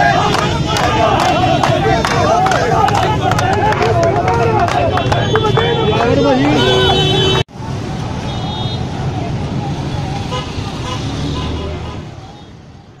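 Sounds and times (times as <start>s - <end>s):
loud chanting voices: 0.0s - 7.4s
crowd of voices: 0.0s - 8.1s
traffic: 0.0s - 13.0s.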